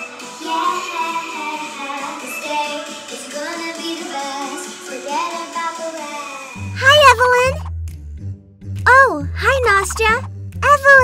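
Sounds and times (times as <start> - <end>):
backing music: 0.0 - 11.0
girl singing: 0.3 - 7.5.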